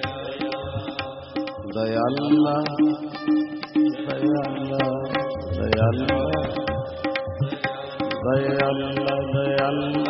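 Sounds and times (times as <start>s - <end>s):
tabla strokes: 0.0s - 10.0s.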